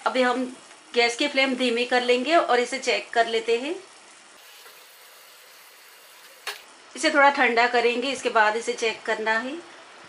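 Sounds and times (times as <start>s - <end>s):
syrup simmering in a pan: 2.9s - 6.6s.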